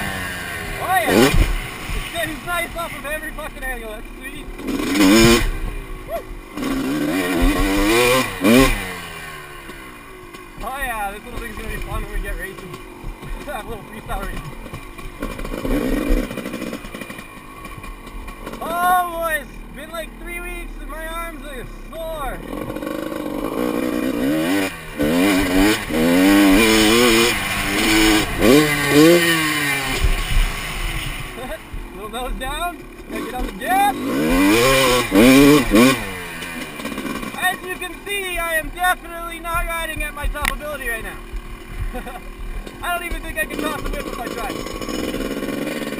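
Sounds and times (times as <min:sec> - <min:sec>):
dirt bike engine revving: 0:00.0 - 0:45.9.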